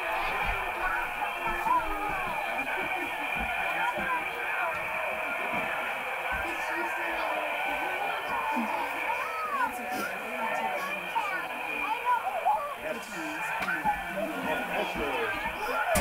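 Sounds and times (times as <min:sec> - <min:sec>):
muffled voices from television: 0:00.0 - 0:16.0.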